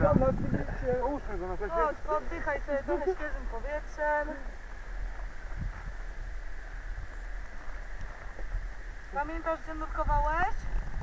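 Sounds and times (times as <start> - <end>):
faint hiss: 0.2 - 11.0.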